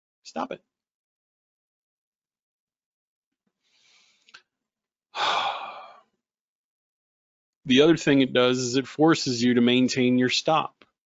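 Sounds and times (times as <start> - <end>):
man sighing: 5.2 - 6.1.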